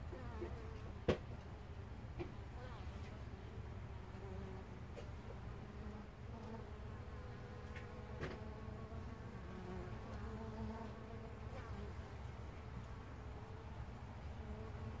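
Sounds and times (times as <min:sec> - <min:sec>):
bees buzzing: 0:05.6 - 0:15.0.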